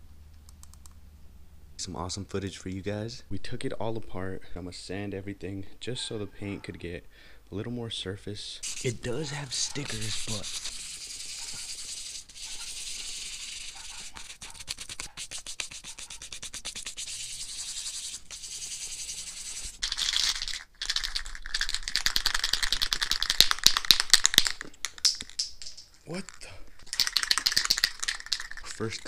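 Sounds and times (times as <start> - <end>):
sandpaper rubbing on metal frame: 8.6 - 19.8
spray paint can rattling: 8.6 - 26.0, 26.8 - 29.0.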